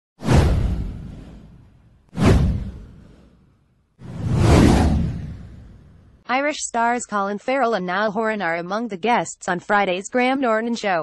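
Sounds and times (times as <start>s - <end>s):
deep whoosh: 0.2s - 6.2s.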